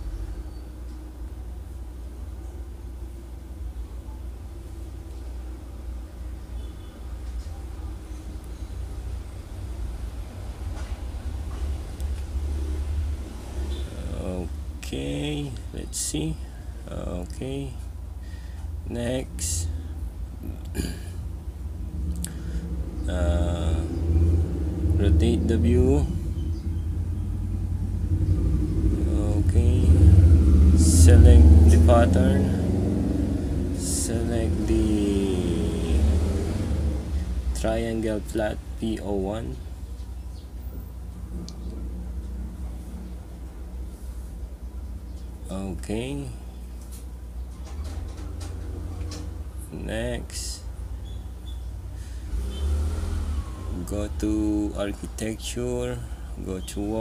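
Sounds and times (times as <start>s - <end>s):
low background rumble: 7.8s - 52.4s
man's voice: 18.9s - 19.8s, 23.1s - 24.0s, 25.0s - 26.2s, 29.0s - 32.8s, 33.7s - 36.2s, 49.7s - 50.7s, 53.7s - 57.0s.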